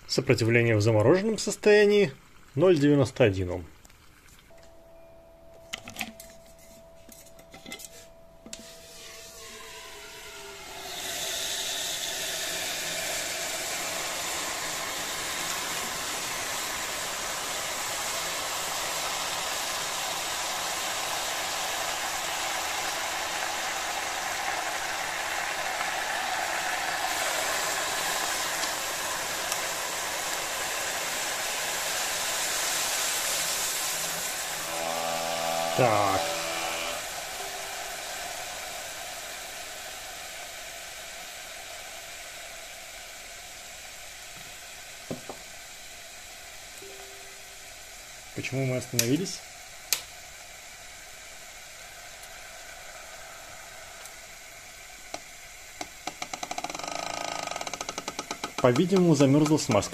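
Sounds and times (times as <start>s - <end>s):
thin steady tone: 4.5s - 14.5s, 46.8s - 49.4s
liquid nitrogen hissing: 7.9s - 59.9s.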